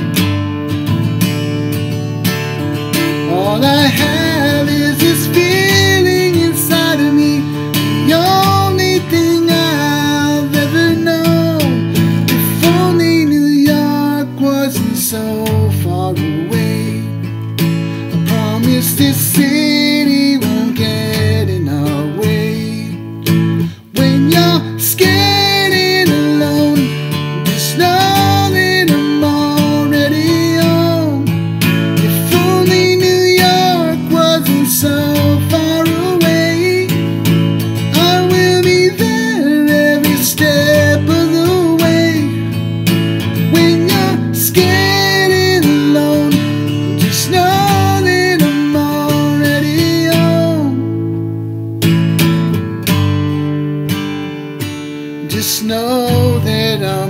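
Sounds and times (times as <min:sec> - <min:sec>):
acoustic guitar strumming: 0:00.0 - 0:57.0
man singing: 0:02.9 - 0:51.2, 0:55.2 - 0:57.0.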